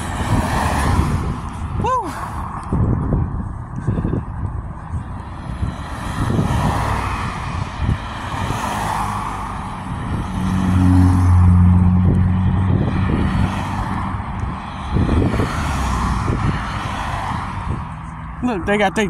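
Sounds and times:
car engine hum: 0.0 - 19.0
cars passing: 0.0 - 19.0.

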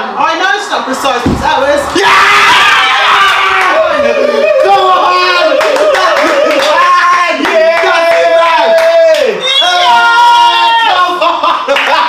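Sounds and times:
people screaming and cheering: 0.4 - 11.2
hands clapping: 5.6 - 9.4.

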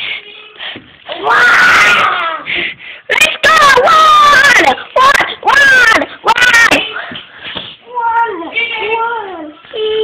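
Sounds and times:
children wailing and squealing: 1.2 - 2.5.

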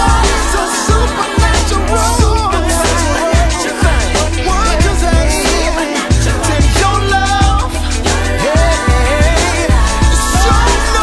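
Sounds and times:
hip hop beat with deep kick drums: 0.0 - 11.0
sustained deep bass: 0.0 - 11.0.

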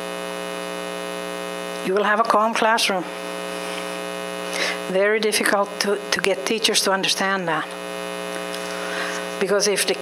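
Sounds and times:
electrical mains hum: 0.0 - 10.0
woman speaking: 1.8 - 3.2, 4.8 - 7.8, 9.4 - 10.0.

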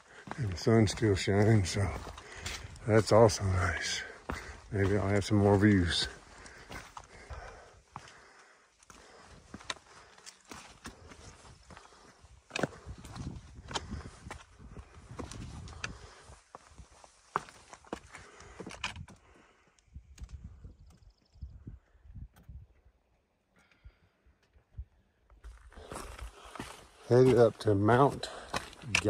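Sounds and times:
boots on rocky trail: 0.0 - 19.6, 25.4 - 29.0.

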